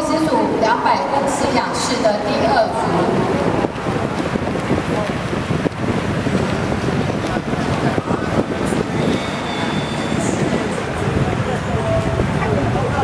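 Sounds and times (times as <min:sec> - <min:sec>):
swimmers splashing: 0:00.0 - 0:13.0.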